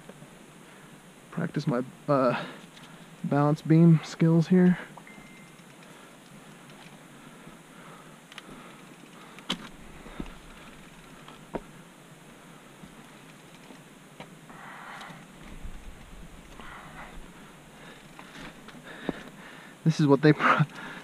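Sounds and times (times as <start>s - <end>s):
mountain bike riding over logs: 8.3s - 11.9s.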